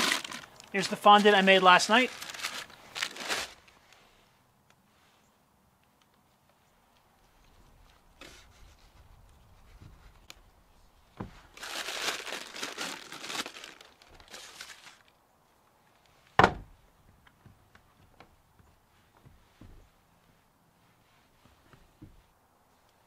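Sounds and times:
paper crinkling: 0.0s - 4.0s, 11.2s - 15.2s
sharp thump: 16.4s - 16.8s.

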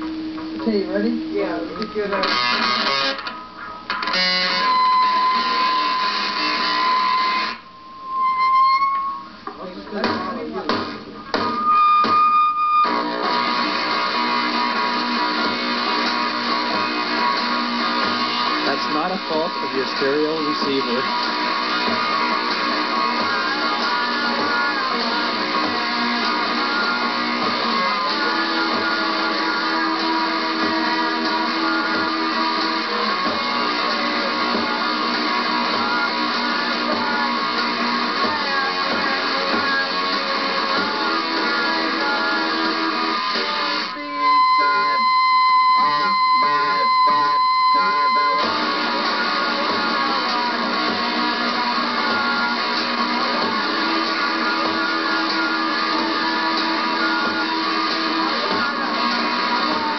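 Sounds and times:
loud high whine: 0.0s - 59.9s
strummed electric guitar: 0.0s - 59.9s
rockabilly band playing: 9.3s - 59.9s.

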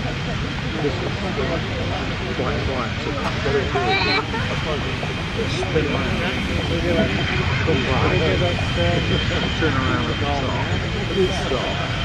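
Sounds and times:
jet engines whining: 0.0s - 12.0s
people talking: 0.0s - 12.0s.

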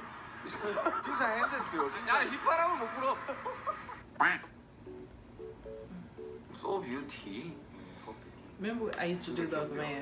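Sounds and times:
duck quacking: 4.2s - 4.5s.

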